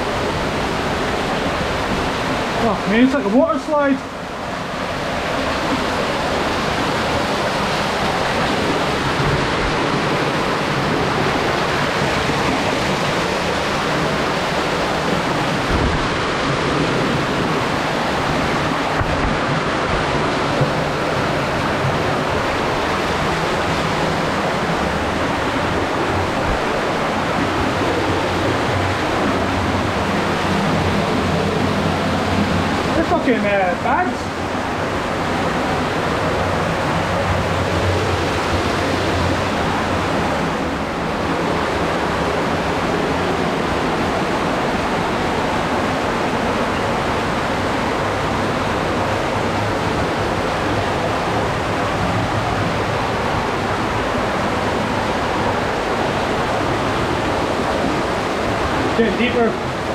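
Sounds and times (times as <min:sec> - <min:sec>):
waterfall rushing over rocks: 0:00.0 - 0:59.9.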